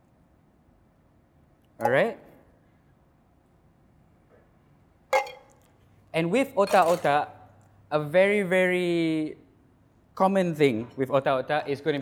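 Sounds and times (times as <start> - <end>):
metallic clink of kitchenware: 5.1 - 5.7, 6.7 - 7.2.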